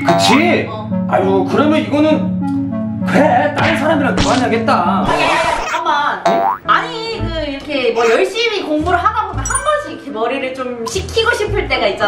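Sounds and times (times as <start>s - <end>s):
cartoon boing effect: 0.0s - 0.5s, 5.0s - 6.7s, 8.0s - 8.3s
background music: 0.0s - 12.0s.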